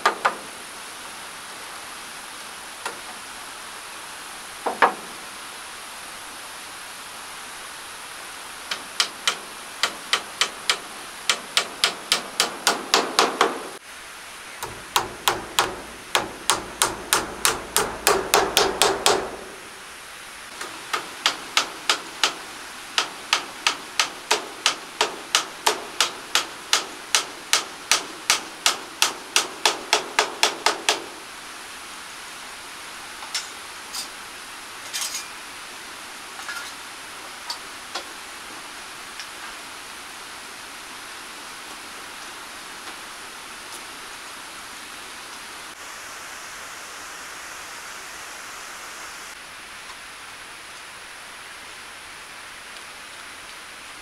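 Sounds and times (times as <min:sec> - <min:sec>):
hammer driving nails into timber: 0:00.0 - 0:00.4, 0:04.7 - 0:05.1, 0:08.7 - 0:13.8, 0:14.6 - 0:19.5, 0:20.6 - 0:31.2.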